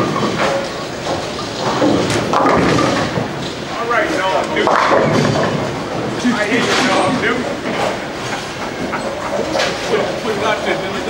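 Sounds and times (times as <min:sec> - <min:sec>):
bowling balls rolling: 0:00.0 - 0:11.0
voices talking: 0:03.6 - 0:11.0.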